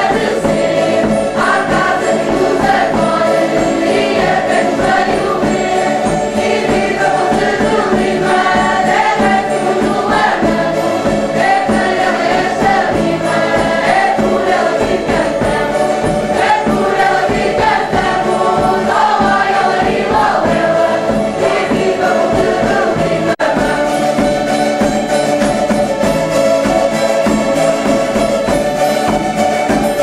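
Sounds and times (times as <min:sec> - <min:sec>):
bass drum: 0:00.0 - 0:30.0
folk group singing in chorus: 0:00.0 - 0:30.0
strummed string instruments: 0:00.0 - 0:30.0.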